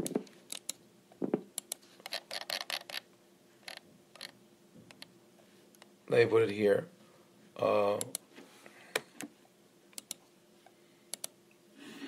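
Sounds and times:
keyboard and mouse clicks: 0.0s - 0.8s, 1.6s - 3.0s, 10.0s - 10.2s, 11.1s - 11.4s.

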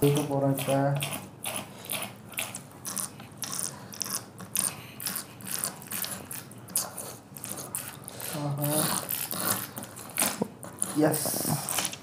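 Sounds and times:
pins scratching sugar candy: 0.0s - 12.0s.

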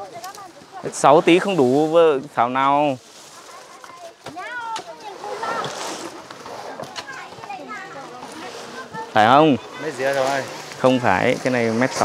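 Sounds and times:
conversation: 0.0s - 12.0s.

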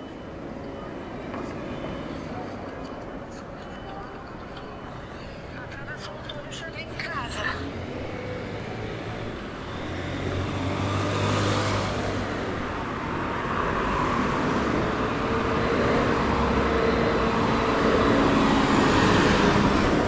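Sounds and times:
bus engine hum: 0.0s - 20.0s
cars passing: 0.0s - 20.0s
motorcycle passing: 7.3s - 20.0s.

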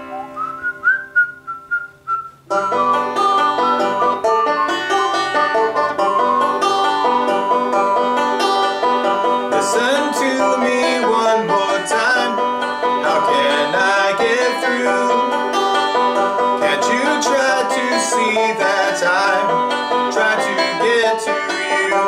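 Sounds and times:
whistled melody: 0.0s - 9.5s
banjo strumming and picking: 2.5s - 22.0s.

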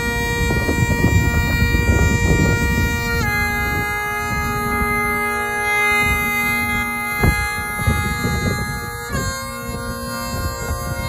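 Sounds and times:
bagpipe playing: 0.0s - 11.0s.

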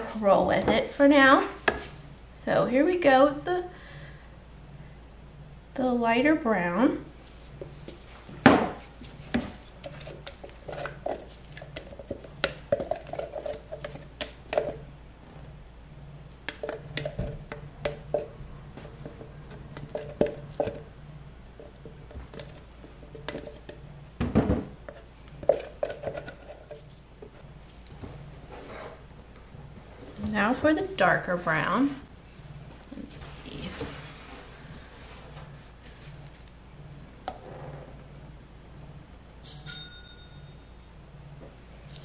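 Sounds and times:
spatula scraping plastic cups: 24.8s - 27.0s.

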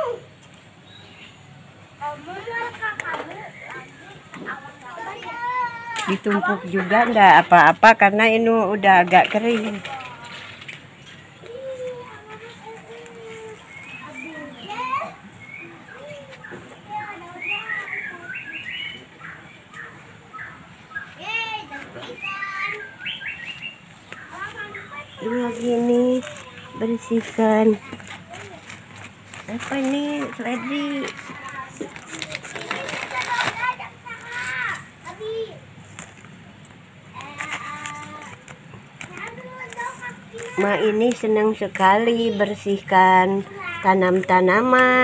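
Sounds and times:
small birds chirping: 0.1s - 45.0s.

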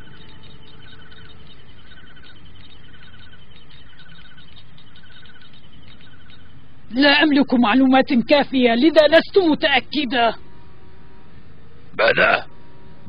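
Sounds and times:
fast light ticking: 0.0s - 6.7s
warbling electronic chirp: 0.0s - 10.4s
steady low hum: 0.0s - 13.0s.

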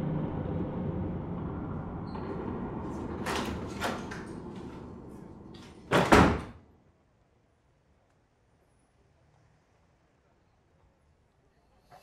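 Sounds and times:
door shutting with heavy thud: 1.4s - 6.6s.

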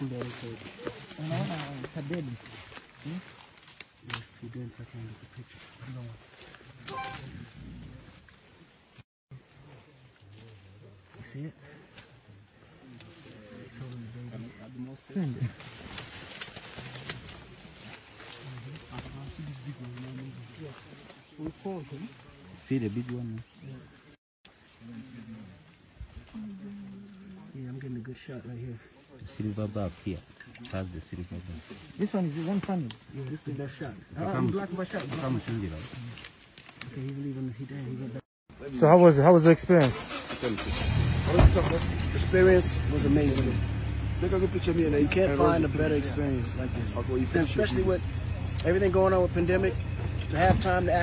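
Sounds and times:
sharp crackles: 0.0s - 4.6s, 15.4s - 23.4s, 34.5s - 37.4s
vehicle engine humming: 40.6s - 51.0s.

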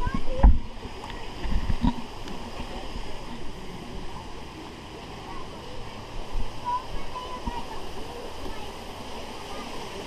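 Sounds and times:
pool water splashing: 0.0s - 10.0s.

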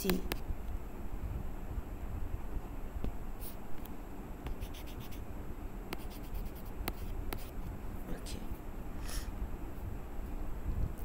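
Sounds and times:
low background hum: 0.0s - 11.0s
stylus scratching and tapping: 3.4s - 5.2s, 5.9s - 7.7s.

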